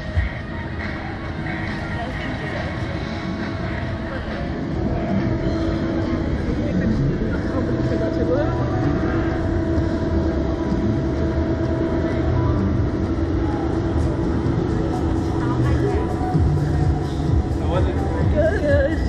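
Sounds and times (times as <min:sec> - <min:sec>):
steady rumbling with hum: 0:00.0 - 0:19.0.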